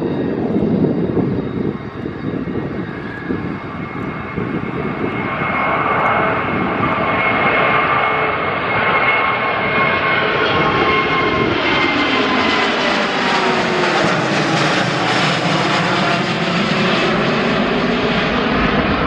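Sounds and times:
jet engine roar overhead: 0.0s - 19.0s.

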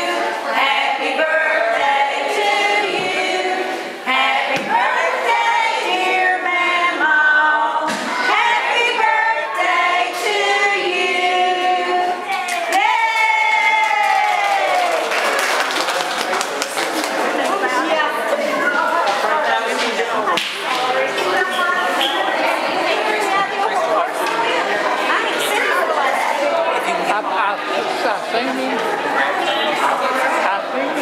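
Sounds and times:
group of people singing: 0.0s - 15.0s, 18.5s - 27.2s
voices: 0.0s - 31.0s
hand clapping: 13.9s - 17.5s.

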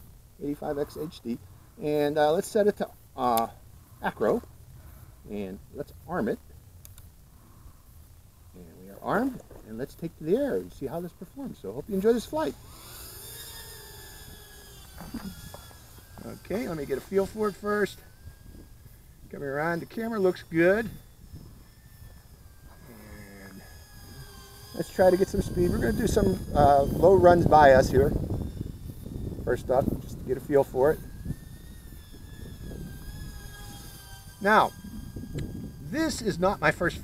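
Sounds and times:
drone motors whining: 0.0s - 37.0s.

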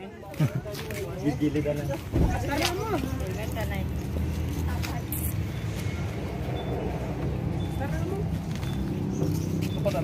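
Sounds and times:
road vehicle rumbling: 0.0s - 10.0s.

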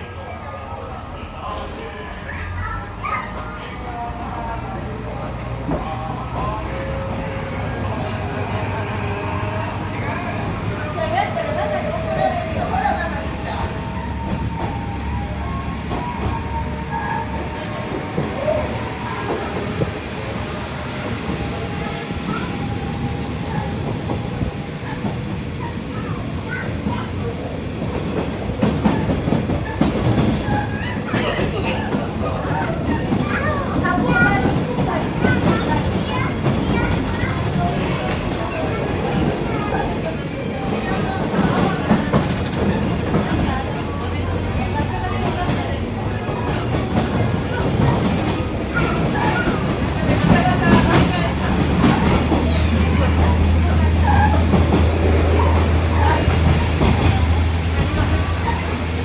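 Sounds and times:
train wheels rumbling on track: 0.0s - 59.0s
rail clicks: 9.7s - 59.0s.

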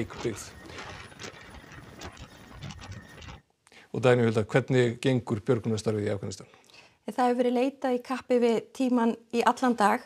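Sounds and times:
helicopter mechanical clatter: 0.0s - 3.4s.

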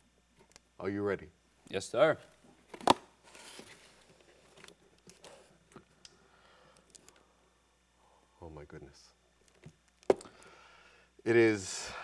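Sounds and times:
tape snapping off cardboard: 2.7s - 3.1s.

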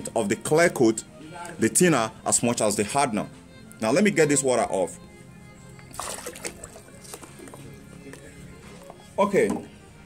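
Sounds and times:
faint background music: 0.0s - 10.0s
water splashing from a cup: 5.9s - 7.6s.

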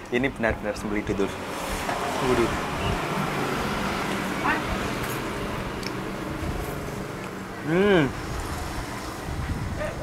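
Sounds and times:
road traffic noise: 0.0s - 10.0s.

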